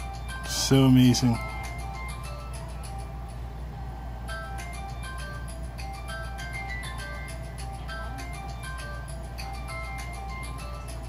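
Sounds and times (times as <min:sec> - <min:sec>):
electronic lullaby tune from toy: 0:00.0 - 0:11.0
steady low hum: 0:00.0 - 0:11.0.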